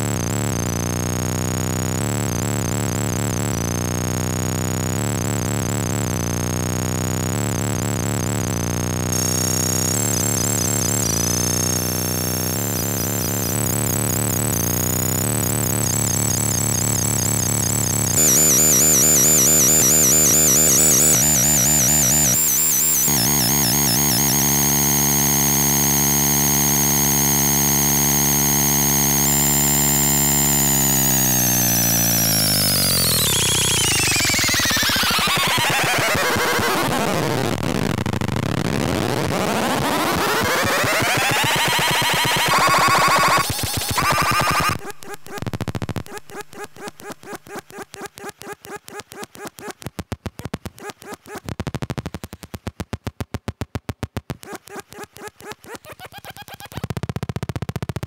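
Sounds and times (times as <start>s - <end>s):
toy phone buzzy electronic drone: 0.0s - 48.6s.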